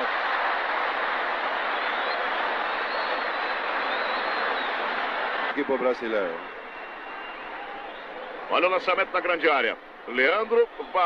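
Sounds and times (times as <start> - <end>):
stadium crowd noise: 0.0 - 11.0
faint high whistling: 1.8 - 4.8, 6.2 - 8.4.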